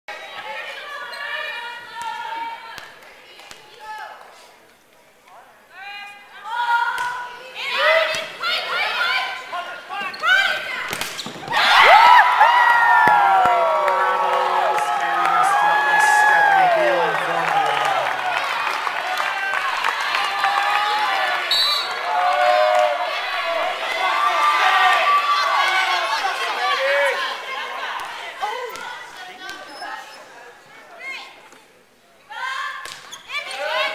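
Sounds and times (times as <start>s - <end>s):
players calling out: 11.5s - 18.4s.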